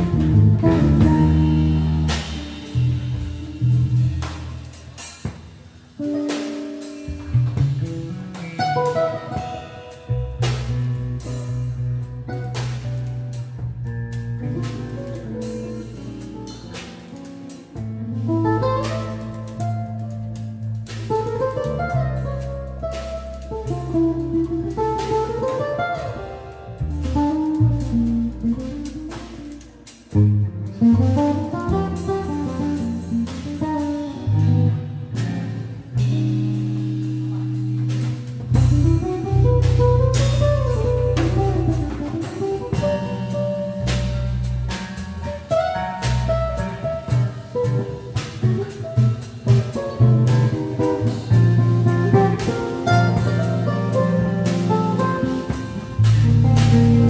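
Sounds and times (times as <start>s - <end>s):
guitar melody: 0.0s - 5.4s, 6.0s - 57.0s
drum kit with cymbals: 0.0s - 57.0s
electric bass: 0.0s - 57.0s.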